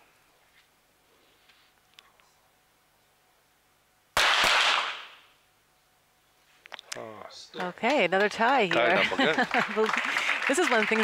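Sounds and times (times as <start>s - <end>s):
pistol shots: 4.2s - 5.2s.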